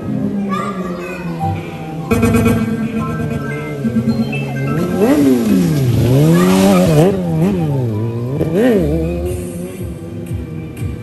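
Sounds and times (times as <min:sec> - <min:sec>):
motorcycle engine revving: 0:01.6 - 0:11.0.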